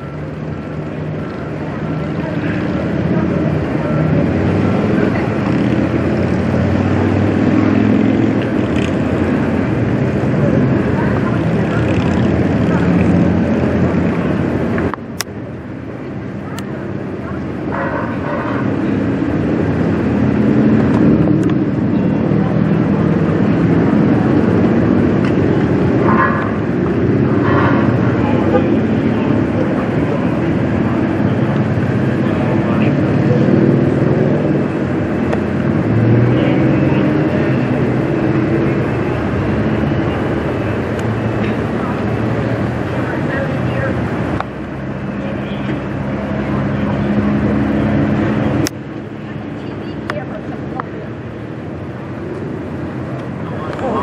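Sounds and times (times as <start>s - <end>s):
fire engine motor drone: 0.0s - 54.0s.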